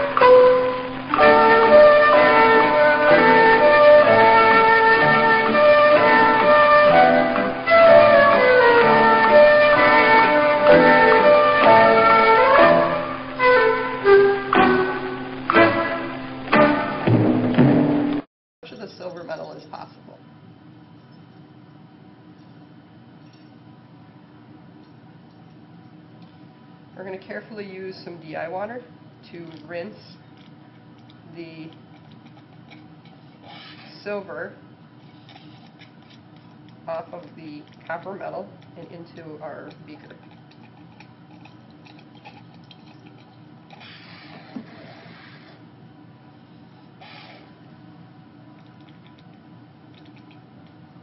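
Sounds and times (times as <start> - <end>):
low room hum: 0.0 - 17.2, 18.1 - 51.0.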